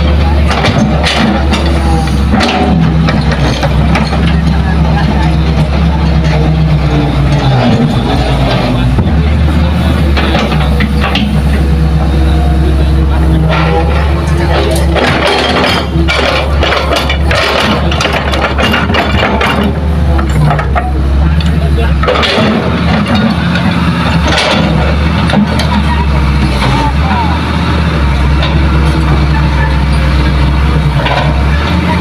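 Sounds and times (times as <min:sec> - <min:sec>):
excavator diesel engine running: 0:00.0 - 0:32.0.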